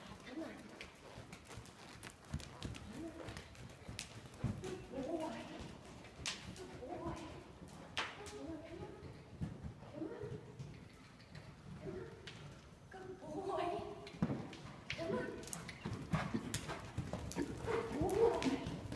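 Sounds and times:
horse hoofbeats on soft dirt: 0:00.0 - 0:10.9, 0:14.1 - 0:18.9.

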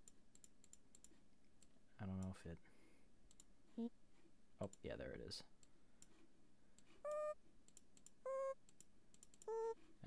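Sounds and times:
computer mouse clicks: 0:00.0 - 0:02.4, 0:03.3 - 0:03.5.

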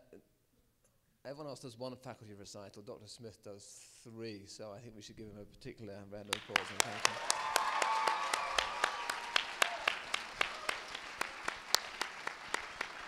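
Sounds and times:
audience applause: 0:06.3 - 0:13.0.

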